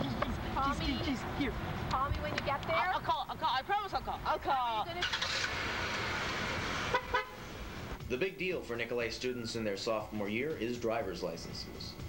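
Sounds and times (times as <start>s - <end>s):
van engine revving: 4.5s - 8.0s.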